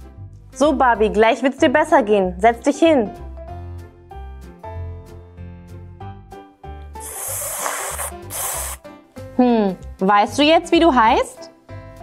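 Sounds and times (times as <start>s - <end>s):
cheerful background music: 0.0s - 12.0s.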